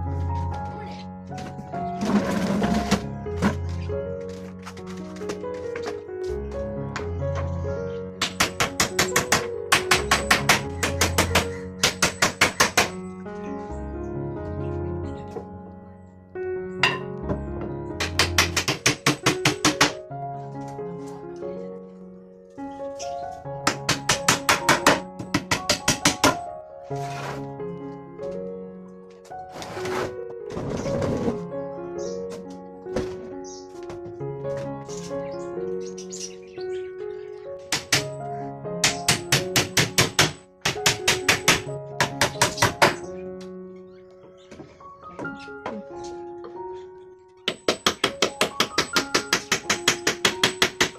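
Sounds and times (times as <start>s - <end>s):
background music: 0.0s - 50.9s
hammer driving a nail into wood: 8.2s - 13.0s, 18.0s - 20.0s, 23.6s - 26.4s, 37.7s - 38.2s, 38.8s - 43.1s, 47.5s - 50.9s.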